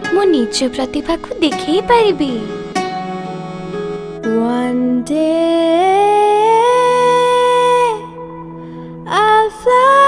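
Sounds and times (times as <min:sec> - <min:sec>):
steady musical drone: 0:00.7 - 0:04.2.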